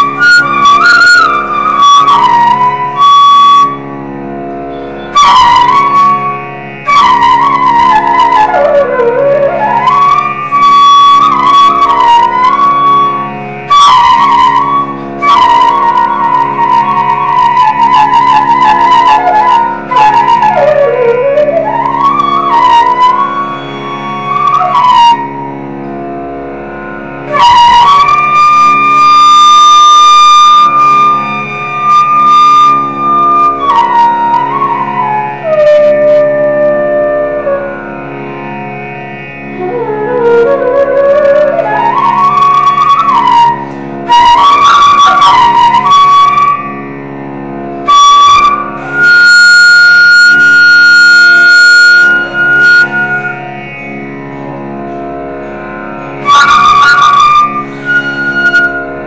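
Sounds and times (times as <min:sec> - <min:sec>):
flute melody: 0:00.0 - 0:54.8, 0:55.4 - 0:59.0.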